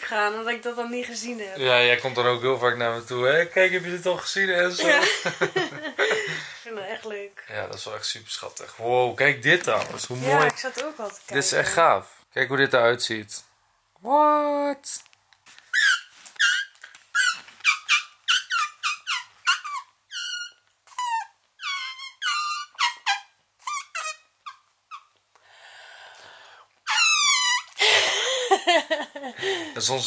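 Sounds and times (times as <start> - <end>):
soft hiss: 0.0 - 14.1
laughter: 4.8 - 6.4, 27.9 - 29.4
high-pitched mouth squeaks: 15.7 - 25.2, 26.8 - 27.8.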